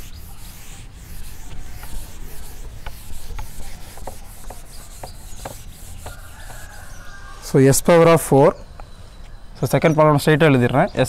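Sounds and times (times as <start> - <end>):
eraser rubbing on whiteboard: 0.0 - 7.2.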